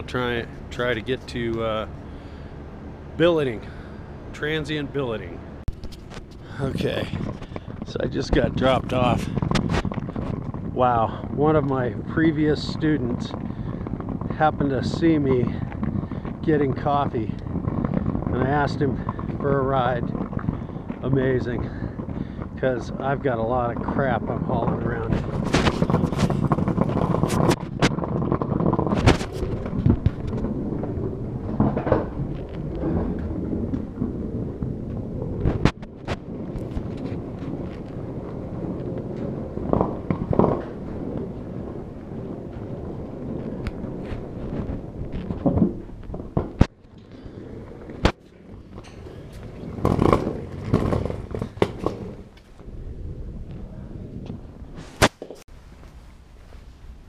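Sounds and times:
handling noise rumbling: 0.0s - 57.0s.

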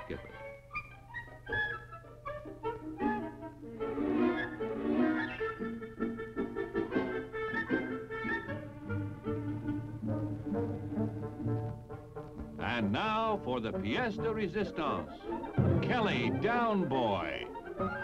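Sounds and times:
orchestral music: 2.4s - 18.0s.

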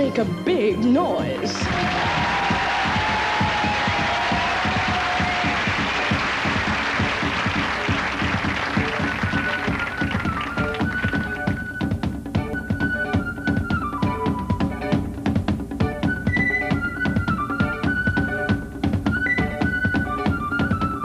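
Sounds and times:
music: 0.0s - 21.0s
tap shoes on stage floor: 1.2s - 12.6s.

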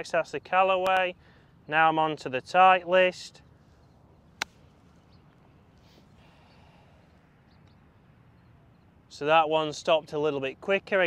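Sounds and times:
golf club striking ball: 4.4s - 4.7s.

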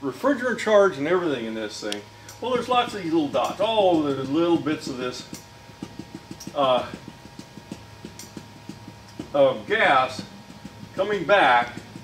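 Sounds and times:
marker tapping on whiteboard: 5.2s - 9.4s.

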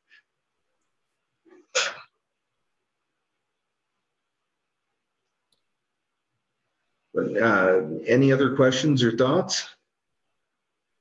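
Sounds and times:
person sneezing: 1.5s - 2.2s.

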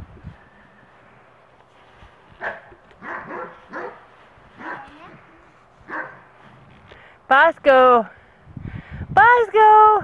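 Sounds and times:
dog barking: 2.4s - 4.0s, 4.6s - 5.0s, 5.9s - 6.2s.

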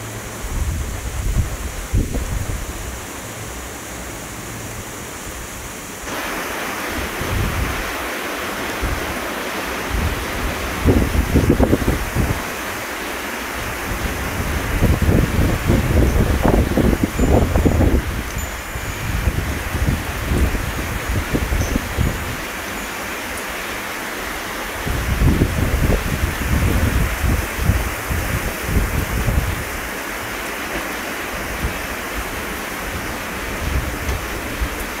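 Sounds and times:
wind buffeting microphone: 0.0s - 3.1s, 6.1s - 22.8s, 24.7s - 30.4s, 31.2s - 35.0s
heavy rain on foliage: 0.0s - 35.0s.

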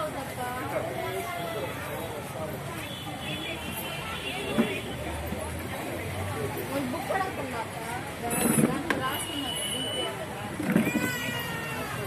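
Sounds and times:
people talking outdoors: 0.0s - 12.0s.

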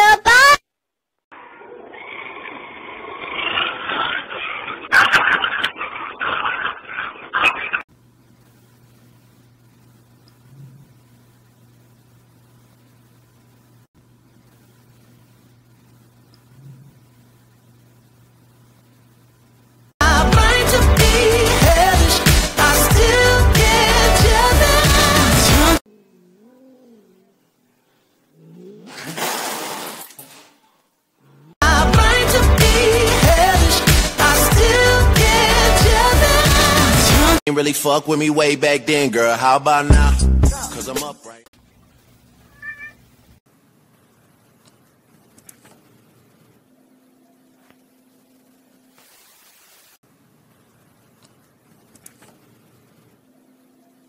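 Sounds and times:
cat hissing and growling: 1.4s - 7.8s, 25.9s - 27.4s, 28.3s - 30.1s
pop song with singing: 20.0s - 25.8s, 31.6s - 41.4s
cat yowling: 42.5s - 43.0s.

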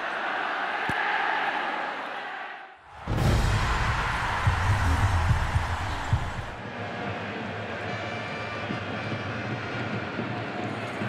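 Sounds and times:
stadium crowd hum: 0.0s - 11.0s
noisy rush: 2.9s - 7.7s
deep bass thumps: 3.0s - 6.6s.

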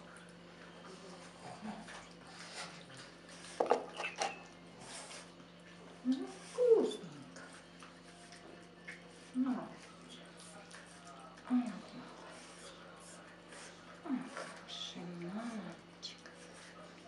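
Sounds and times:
puppy licking and smacking: 6.9s - 11.5s.

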